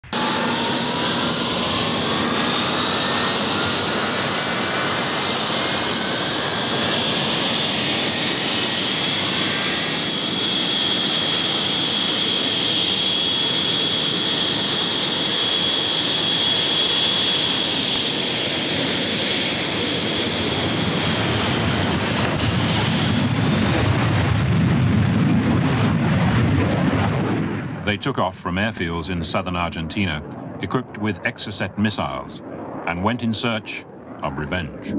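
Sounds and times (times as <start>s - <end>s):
jet engine whine and rush: 0.0s - 34.9s.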